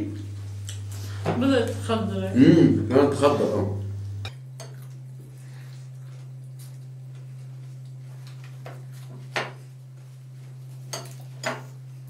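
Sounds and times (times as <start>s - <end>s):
steady low hum: 0.0s - 12.0s
clinks against plates and bowls: 10.9s - 11.7s.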